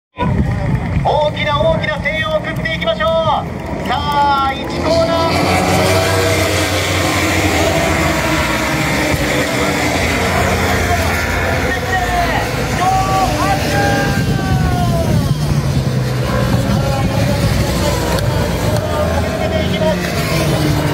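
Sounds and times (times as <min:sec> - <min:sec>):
racing motorcycle engines passing: 0:00.2 - 0:20.9.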